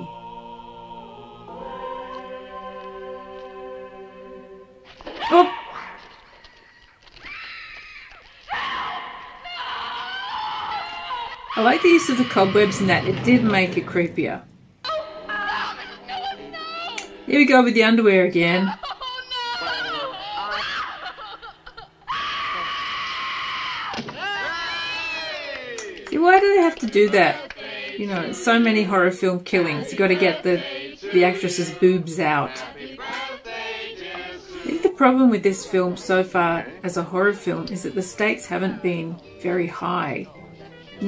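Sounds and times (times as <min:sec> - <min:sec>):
woman screaming: 0:07.2 - 0:13.1, 0:22.0 - 0:25.3
voices: 0:10.8 - 0:18.8, 0:25.4 - 0:33.3, 0:34.2 - 0:41.0.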